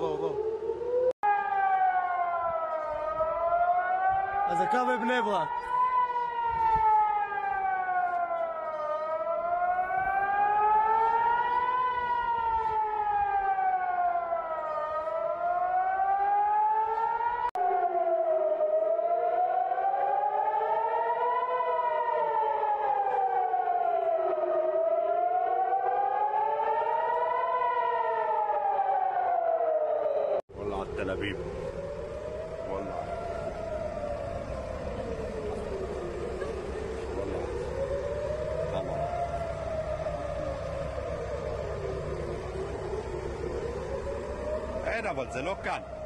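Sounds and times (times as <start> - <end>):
air-raid siren wailing: 0.0 - 46.0.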